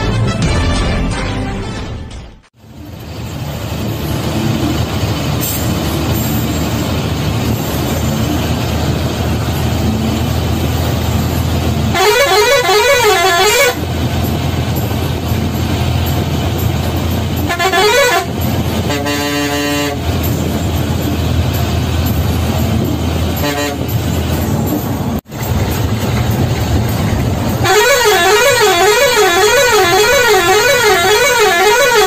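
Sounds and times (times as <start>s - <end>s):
bus diesel engine running: 0.0s - 32.0s
warbling horn: 11.2s - 14.4s, 17.3s - 20.6s, 23.4s - 24.1s, 27.5s - 32.0s
steady horn note: 11.9s - 13.8s, 17.5s - 20.0s, 23.4s - 23.9s, 27.6s - 32.0s.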